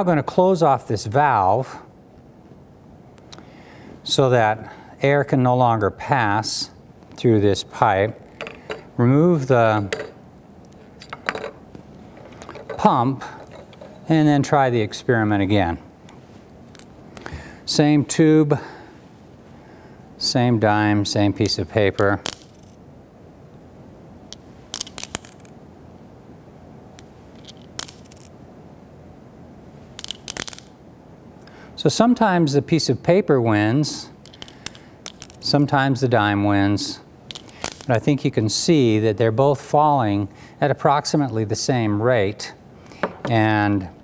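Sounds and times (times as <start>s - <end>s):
coin dropping in glass tube: 22.2s - 22.8s, 24.7s - 25.5s, 27.3s - 28.3s, 30.0s - 30.8s, 34.2s - 35.4s, 37.3s - 37.9s
faint hiss: 30.9s - 44.0s.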